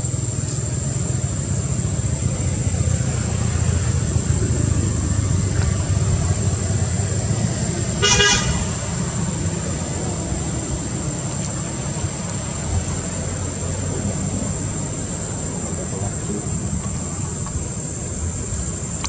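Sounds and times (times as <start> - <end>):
road traffic rumble: 0.0 - 19.0
vehicle horn toot: 8.0 - 8.9.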